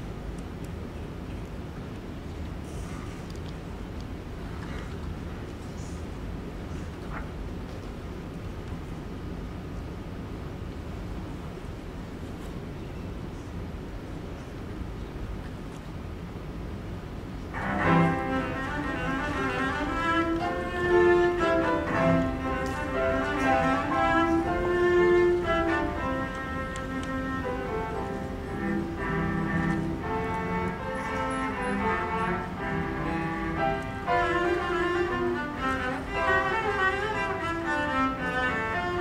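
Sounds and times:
hall noise: 0:17.3 - 0:39.0
cello playing: 0:17.5 - 0:39.0
piano accompaniment: 0:17.5 - 0:39.0.

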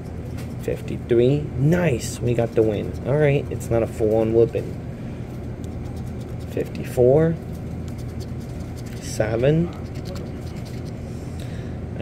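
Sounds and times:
low steady hum: 0:00.0 - 0:12.0
scratcher scraping lottery ticket: 0:02.3 - 0:04.8, 0:05.7 - 0:11.0.

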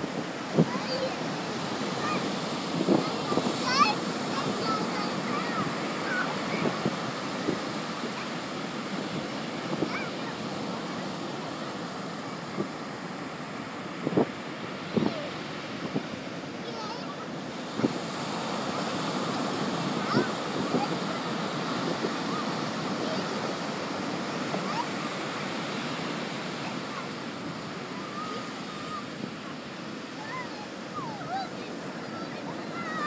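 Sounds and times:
ocean surf breaking on beach: 0:00.0 - 0:33.0.

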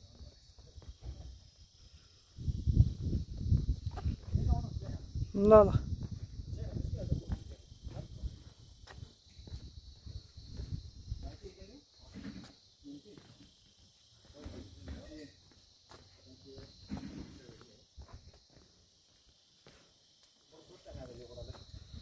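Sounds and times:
insect drone: 0:00.0 - 0:22.0.

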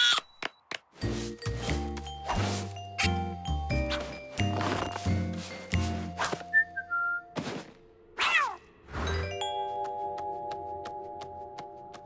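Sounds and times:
whistled notes stepping downward: 0:06.4 - 0:07.4.

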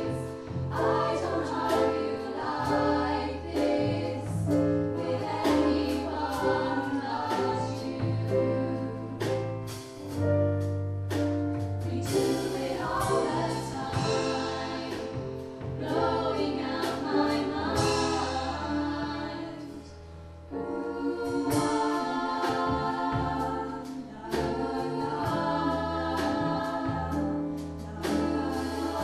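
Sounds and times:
vocal ensemble singing in harmony: 0:00.0 - 0:10.2, 0:11.8 - 0:29.0.

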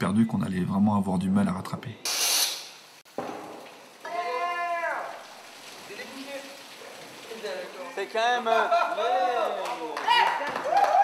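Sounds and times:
broom pushing water on concrete: 0:05.2 - 0:08.7.

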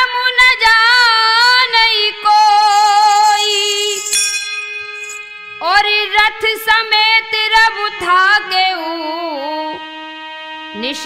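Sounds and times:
woman singing: 0:00.0 - 0:04.1, 0:05.6 - 0:09.8, 0:10.8 - 0:11.0
harmonium holding a note: 0:00.0 - 0:11.0
bright metallic ding: 0:03.7 - 0:05.4.

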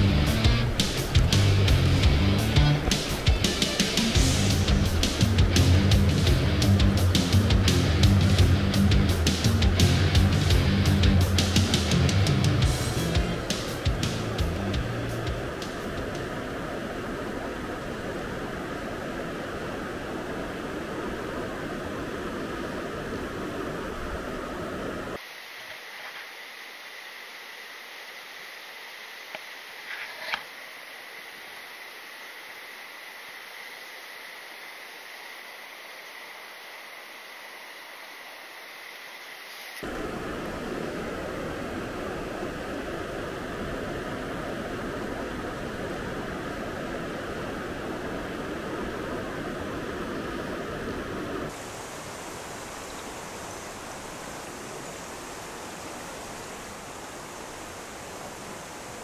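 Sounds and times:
stream rushing over stones: 0:00.0 - 0:07.6, 0:12.7 - 0:59.0.

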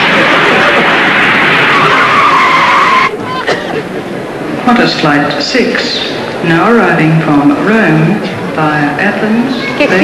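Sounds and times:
jet engine whine: 0:00.0 - 0:04.6.

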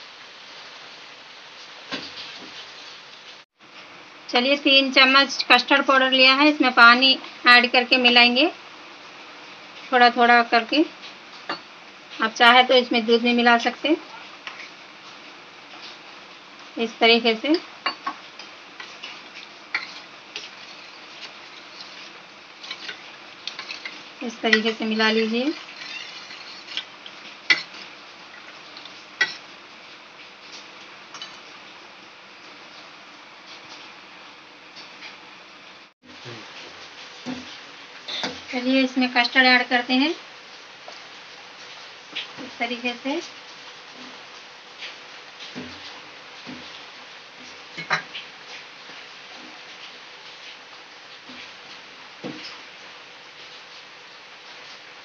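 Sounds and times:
steady hiss: 0:10.8 - 0:55.0
metal spoon stirring in steel bowl: 0:18.8 - 0:27.8.

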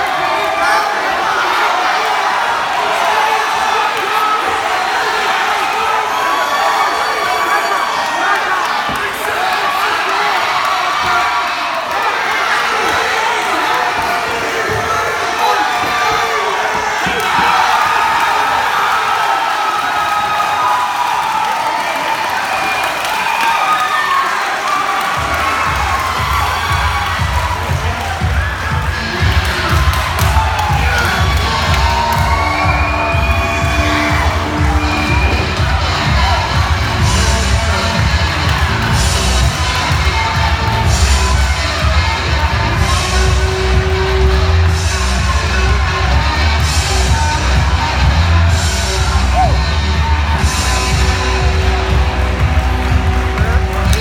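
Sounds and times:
crowd cheering and shouting: 0:00.0 - 0:54.0
music with heavy bass beat: 0:25.2 - 0:54.0.

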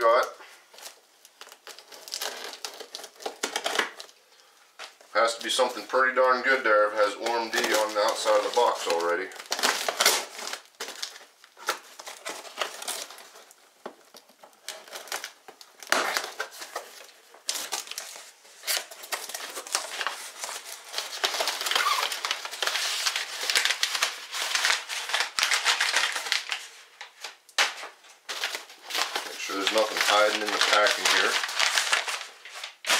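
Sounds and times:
packing paper crinkling: 0:00.0 - 0:32.9.

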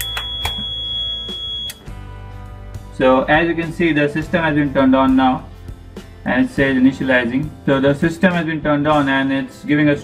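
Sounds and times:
buzzer beep: 0:00.0 - 0:01.9.

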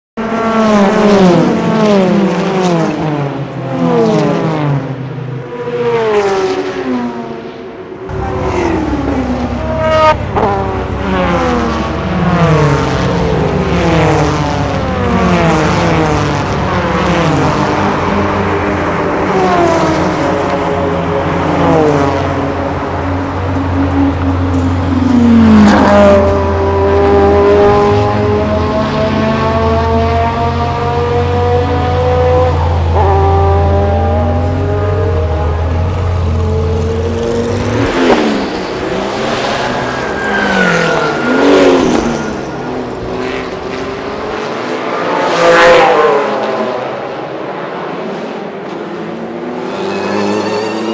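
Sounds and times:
sports car engines revving past: 0:00.2 - 0:50.9
engine revving up close: 0:49.5 - 0:50.9.

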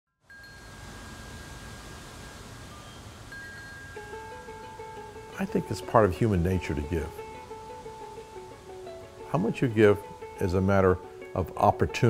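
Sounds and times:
faint chime-like tones: 0:00.2 - 0:04.4
steady hiss: 0:00.3 - 0:12.0.

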